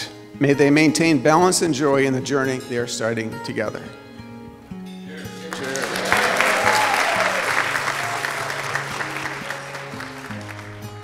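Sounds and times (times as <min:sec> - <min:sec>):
soft guitar music: 0:00.0 - 0:11.0
people applauding: 0:05.2 - 0:11.0.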